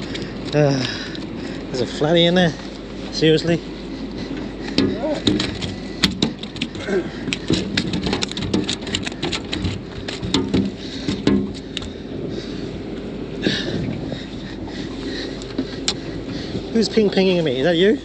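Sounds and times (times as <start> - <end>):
low steady hum: 0.0 - 18.0
fishing gear clicking and knocking: 4.3 - 12.0, 14.6 - 17.2.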